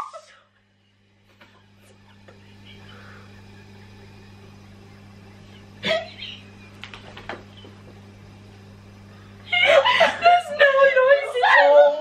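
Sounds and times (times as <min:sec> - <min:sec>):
low hum: 0:00.0 - 0:12.0
women's stifled laughter: 0:05.8 - 0:06.4.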